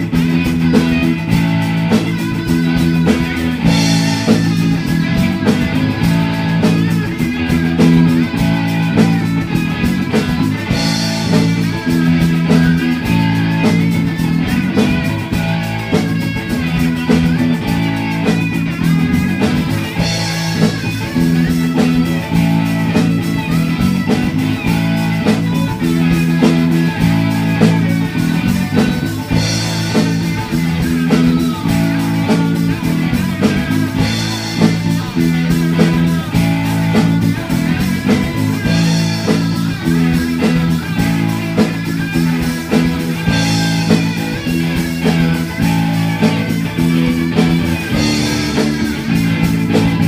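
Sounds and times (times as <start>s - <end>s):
bass guitar: 0.0s - 50.0s
drum kit: 0.0s - 50.0s
electric guitars: 0.0s - 50.0s.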